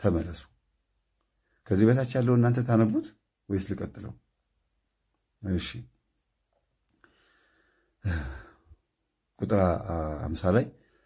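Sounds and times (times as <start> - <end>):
man breathing in: 7.0 - 8.8
man sighing: 7.0 - 8.8.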